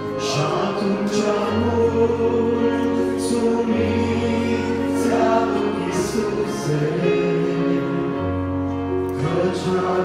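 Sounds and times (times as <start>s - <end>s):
voices singing worship song: 0.0s - 10.0s.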